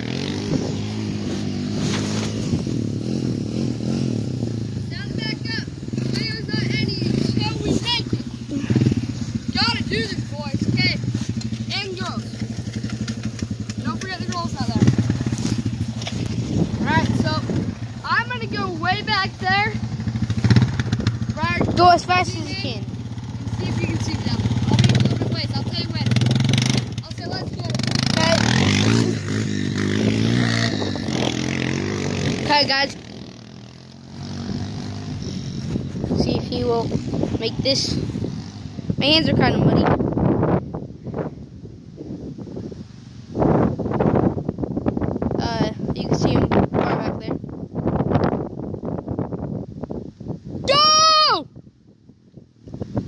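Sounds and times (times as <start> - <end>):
atv engine running: 0.0 - 50.5
voices talking: 2.9 - 20.4, 21.1 - 40.0.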